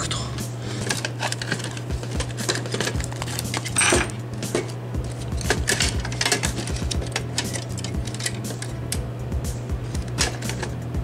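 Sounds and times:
metal model parts clinking: 0:00.8 - 0:04.2, 0:05.4 - 0:08.7.

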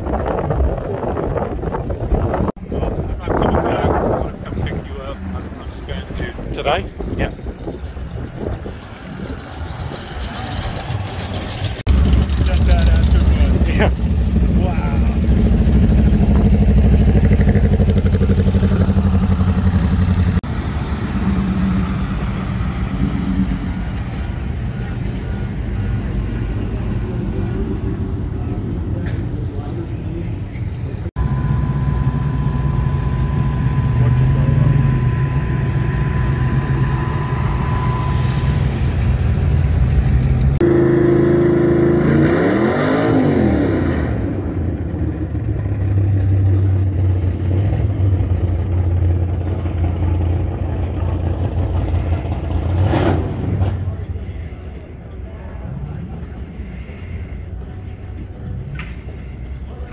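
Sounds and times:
car engines driving past: 0:00.0 - 0:59.9
thin steady whine: 0:31.2 - 0:39.6.

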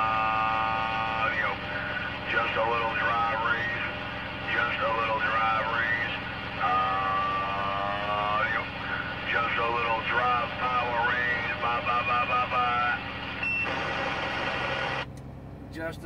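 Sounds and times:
voice singing over radio speaker: 0:00.0 - 0:13.1
steady hum: 0:00.0 - 0:15.9.

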